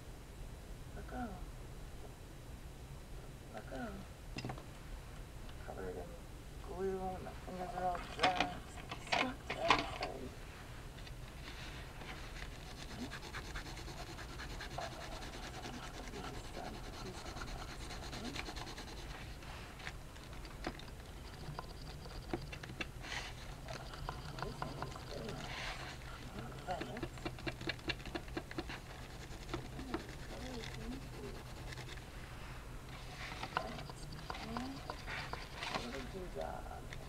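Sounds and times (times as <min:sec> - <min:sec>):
hands rubbing paper: 0:11.3 - 0:36.4
pencil scratching on paper: 0:12.0 - 0:19.6, 0:21.1 - 0:32.1, 0:33.0 - 0:36.3
small ticks: 0:20.2 - 0:22.9.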